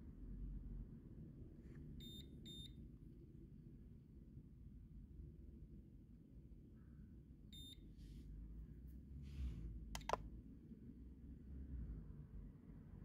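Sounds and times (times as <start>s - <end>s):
sharp clicks: 10.0s - 10.2s.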